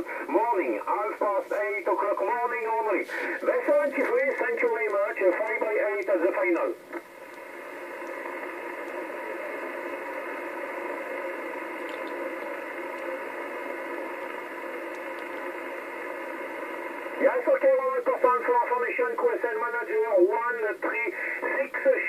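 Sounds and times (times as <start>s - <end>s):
radio voice: 0.0s - 6.8s, 15.6s - 22.0s
radio receiver hiss: 0.0s - 22.0s.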